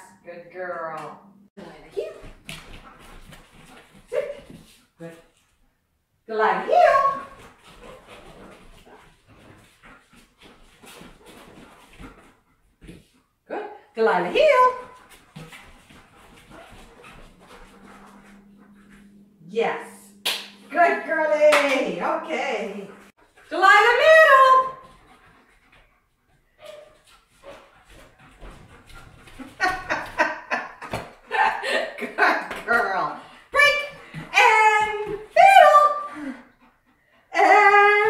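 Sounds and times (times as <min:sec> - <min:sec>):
dog whining: 0:16.6 - 0:19.5.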